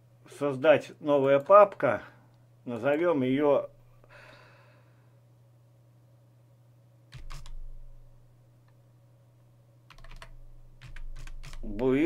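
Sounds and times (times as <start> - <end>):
computer keyboard typing: 7.1 - 7.8, 9.9 - 11.9.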